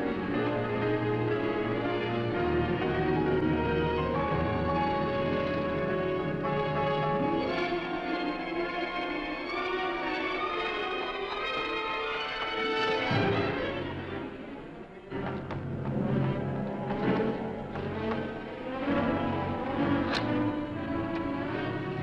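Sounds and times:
orchestral film score: 0.0 - 22.0.

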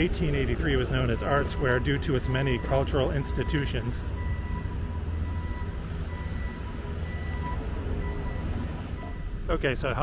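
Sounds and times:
engines and street traffic rumble: 0.0 - 10.0
reversing alarm beeping: 0.5 - 9.4.

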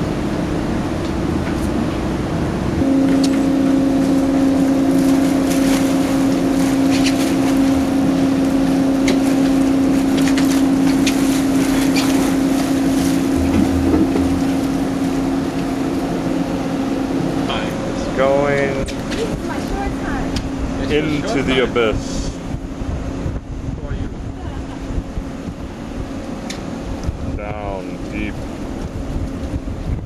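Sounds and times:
sea noise: 0.0 - 27.0
deck machinery hum: 0.0 - 30.0
wind on microphone: 11.9 - 15.6, 22.0 - 26.2, 26.9 - 27.5, 28.3 - 30.0.

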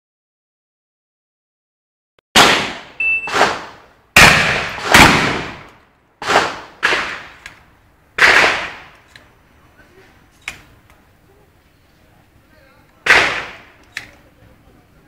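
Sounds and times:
shotgun shots echoing: 2.4 - 7.5, 8.2 - 9.0, 13.0 - 13.8.

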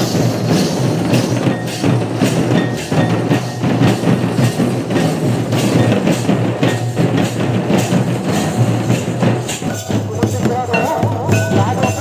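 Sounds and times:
drums: 0.0 - 12.0
hand cymbals clashing: 0.0 - 12.0.

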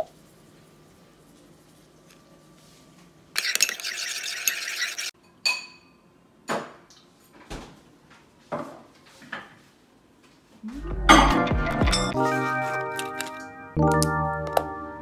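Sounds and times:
spoon stirring in ceramic bowl: 3.4 - 5.8
tableware knocks: 11.1 - 12.2.

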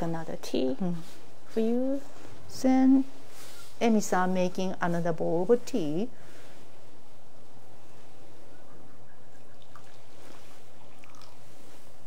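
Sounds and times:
steady low hum: 0.0 - 12.0
water dripping: 9.4 - 11.5
water poured into bowl: 9.6 - 11.5.

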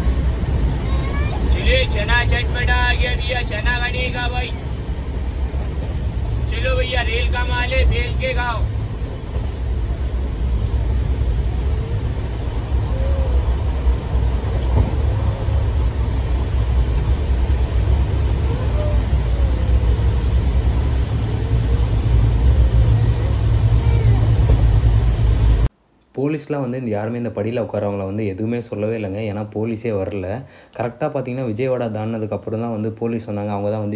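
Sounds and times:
train rumbling: 0.0 - 25.7.

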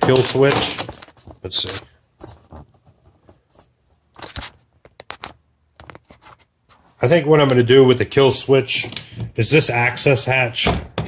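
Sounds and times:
cables clicking and rustling: 0.0 - 6.8.

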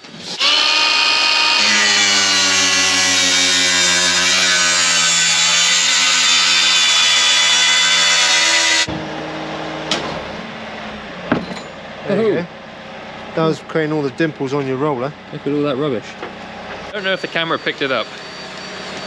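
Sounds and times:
cordless power tool cutting: 0.0 - 8.9
tool winding down hum: 0.0 - 8.9.

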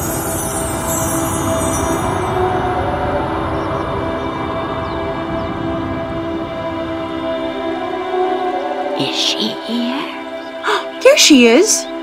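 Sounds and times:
high shimmering sparkle: 0.0 - 5.0
low rumbling noise: 0.0 - 9.0
sustained film score music: 0.0 - 12.0.

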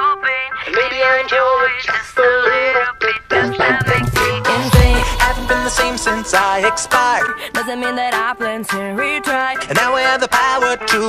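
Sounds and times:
light backing music: 0.0 - 11.0
person singing sustained notes: 3.3 - 7.6.

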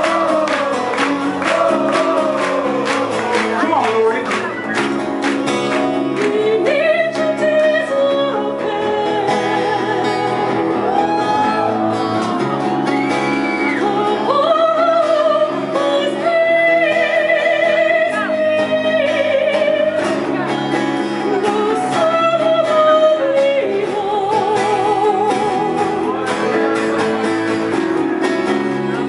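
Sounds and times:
strummed acoustic guitar: 0.0 - 29.0
woman singing with vibrato: 6.2 - 11.8, 13.7 - 20.2, 21.2 - 26.0.

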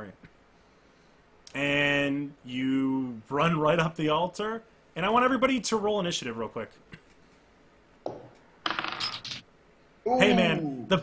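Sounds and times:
dice clattering on a tabletop: 8.1 - 9.4.

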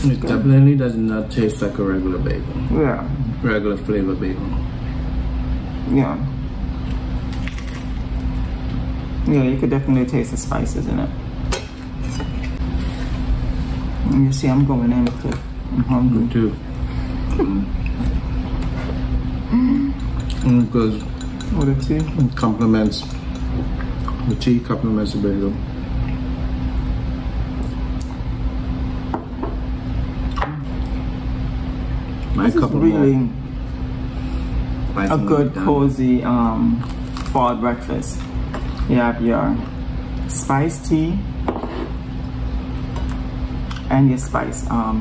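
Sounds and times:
steady low hum: 0.0 - 45.0
people chewing food: 17.1 - 24.4, 38.1 - 38.9.

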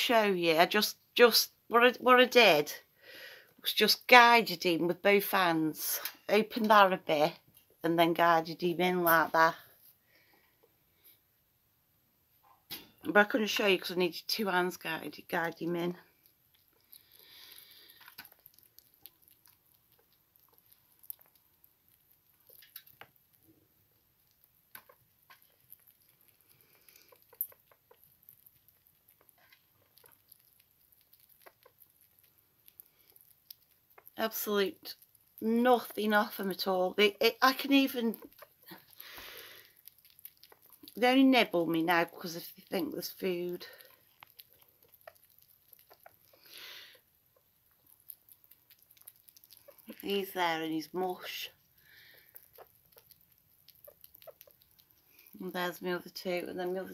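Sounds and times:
small animals clicking and scratching: 12.7 - 56.9.

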